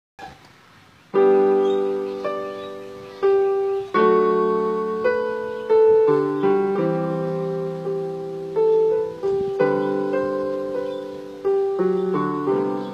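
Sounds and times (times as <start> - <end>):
electronic keyboard piano melody: 1.1 - 12.9.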